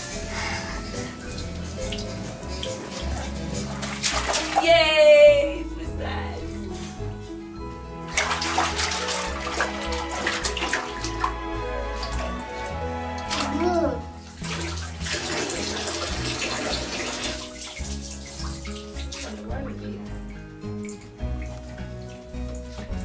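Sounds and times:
background music: 0.0s - 23.0s
bathwater splashing: 0.0s - 23.0s.

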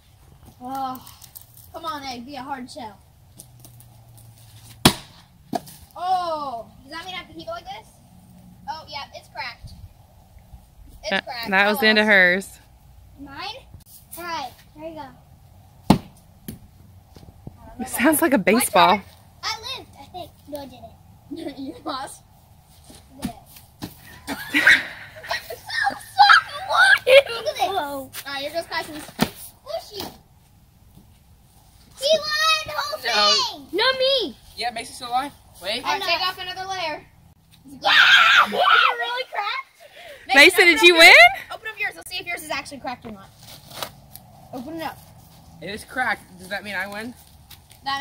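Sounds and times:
children laughing: 24.0s - 28.0s, 37.9s - 41.6s
children shouting and shrieking: 24.0s - 28.8s, 31.9s - 34.4s, 37.6s - 41.8s.

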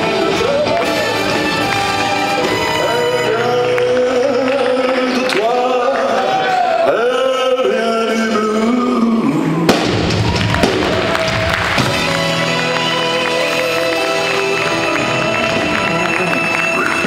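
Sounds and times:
live band with brass: 0.0s - 5.4s, 9.7s - 17.0s
sharp drum hits: 9.7s - 11.1s.

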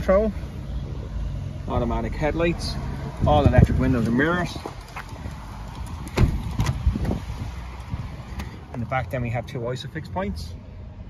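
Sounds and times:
car door latch knocks and clunks: 6.1s - 7.2s.

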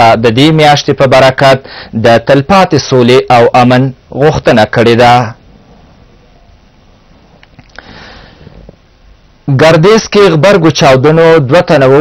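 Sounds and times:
man breathing in through nose: 1.6s - 2.0s, 7.7s - 8.8s
faint clicks: 7.4s - 7.9s.

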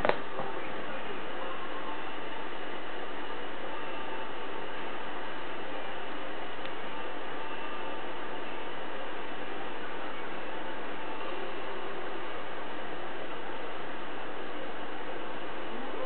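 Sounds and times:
faint steady tones: 0.0s - 16.0s.

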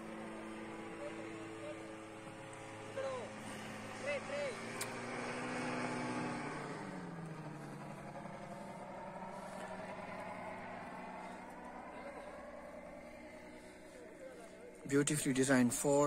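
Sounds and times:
paraglider motor droning overhead: 0.0s - 16.0s.

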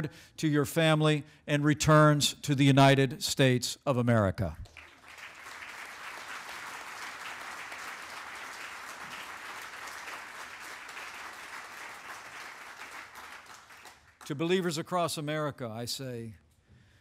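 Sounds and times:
audience applauding: 4.7s - 14.3s.

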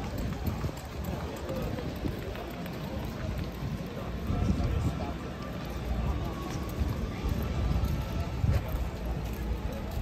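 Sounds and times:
people talking: 0.0s - 10.0s.

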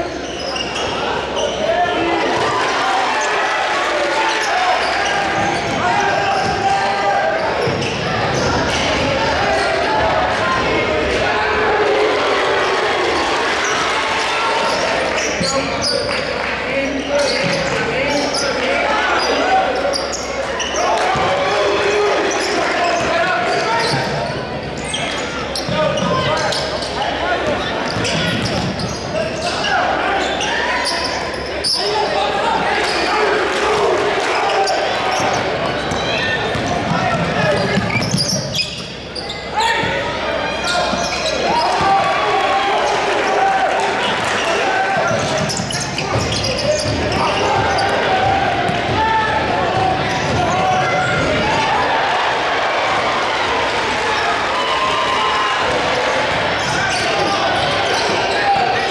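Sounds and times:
indistinct voices: 0.0s - 58.9s.

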